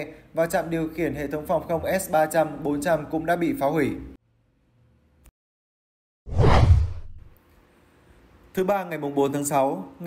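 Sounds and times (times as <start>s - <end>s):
deep whoosh: 6.3s - 7.3s.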